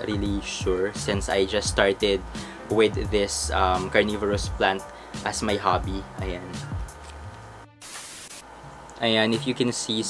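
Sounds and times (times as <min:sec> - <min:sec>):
static-like hiss: 0:00.0 - 0:10.0.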